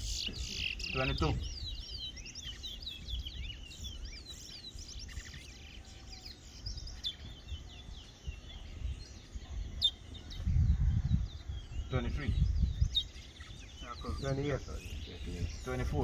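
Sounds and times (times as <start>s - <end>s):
finch singing whistled notes: 0.0s - 16.0s.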